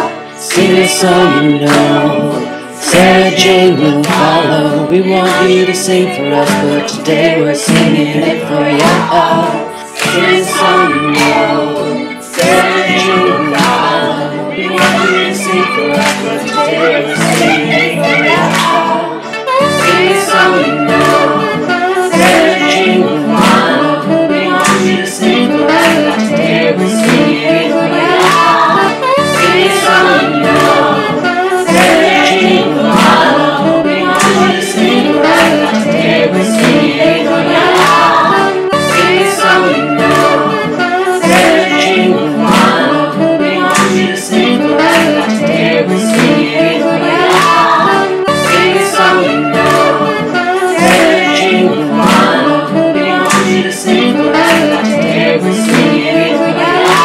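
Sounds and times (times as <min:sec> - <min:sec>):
backing music with steady beat: 0:00.0 - 0:57.0
voices singing in harmony: 0:00.0 - 0:57.0.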